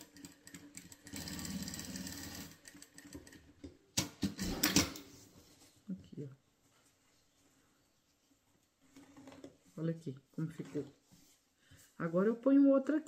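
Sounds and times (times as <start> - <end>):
industrial sewing machine stitching: 0.0 - 3.2.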